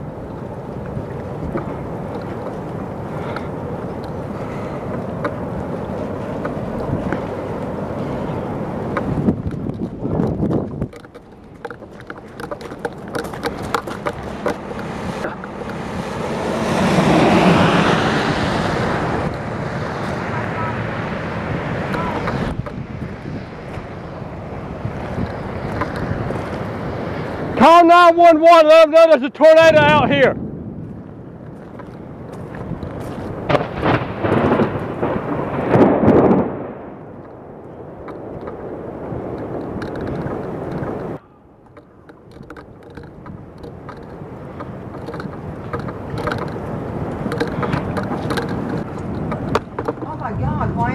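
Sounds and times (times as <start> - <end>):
storm wind buffeting microphone: 0.0 - 50.9.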